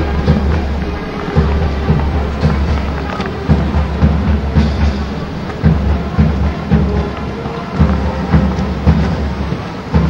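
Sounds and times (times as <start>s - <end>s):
deep low thumps: 0.0s - 10.0s
heavy rain on microphone: 0.0s - 10.0s.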